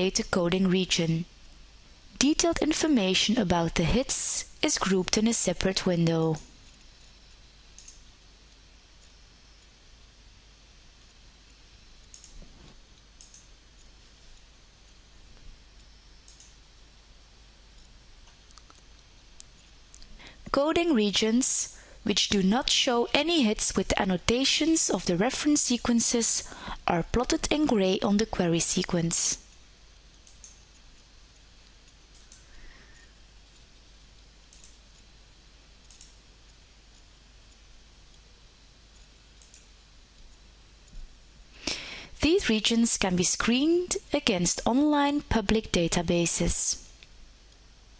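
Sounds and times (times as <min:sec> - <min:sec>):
steady low hiss: 0:00.0 - 0:47.9
computer mouse clicks: 0:07.7 - 0:08.1, 0:12.1 - 0:14.5, 0:15.8 - 0:16.6, 0:17.8 - 0:20.1, 0:30.1 - 0:31.0, 0:31.8 - 0:33.7, 0:34.5 - 0:35.1, 0:35.8 - 0:38.2, 0:38.9 - 0:41.0
computer mouse click: 0:07.8 - 0:08.0, 0:12.1 - 0:12.4, 0:13.0 - 0:13.5, 0:16.2 - 0:16.6, 0:30.1 - 0:30.7, 0:31.9 - 0:32.4, 0:34.5 - 0:35.0, 0:35.8 - 0:36.2, 0:39.0 - 0:39.7.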